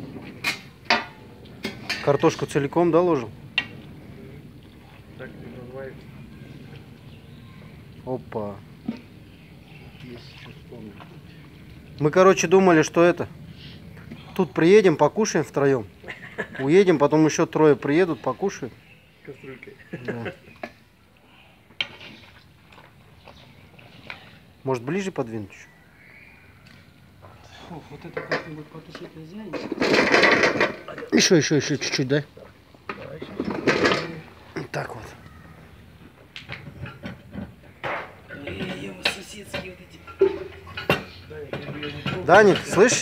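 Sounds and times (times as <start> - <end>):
scraping and stirring: 21.7 - 24.4.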